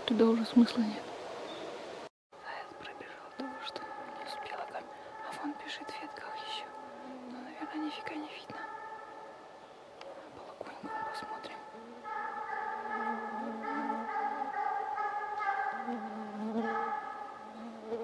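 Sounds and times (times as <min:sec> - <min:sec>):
distant hounds howling: 0:02.4 - 0:18.0.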